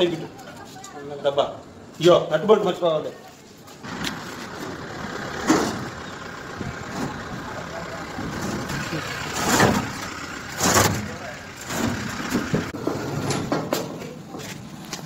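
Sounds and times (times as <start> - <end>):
truck engine idling: 3.8 - 14.8.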